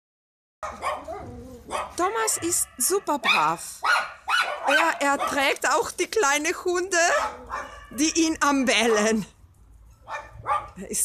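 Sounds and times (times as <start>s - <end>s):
dogs barking and yelping: 0.6s - 5.8s, 7.0s - 9.2s, 9.8s - 10.8s.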